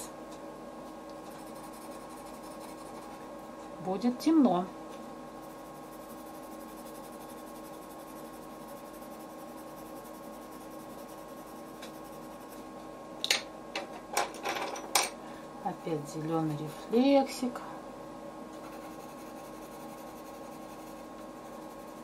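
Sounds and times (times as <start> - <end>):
low background hum: 0.0 - 22.0
pencil scratching on paper: 1.3 - 3.2, 5.3 - 12.6, 18.6 - 22.0.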